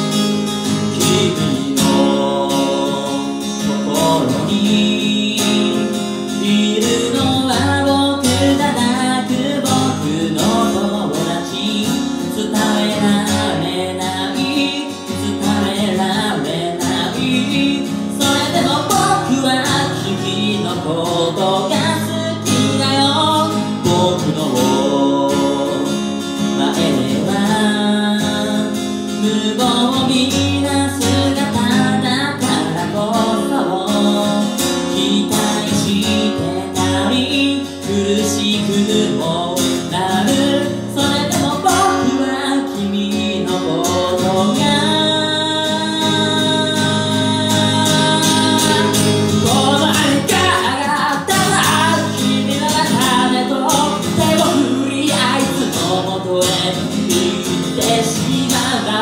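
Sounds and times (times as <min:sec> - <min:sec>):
acoustic guitar: 0:00.0 - 0:59.0
man singing: 0:00.0 - 0:59.0.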